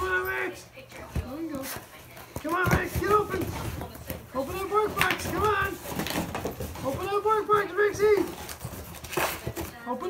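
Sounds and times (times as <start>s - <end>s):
dog pawing cardboard box: 1.0s - 9.9s.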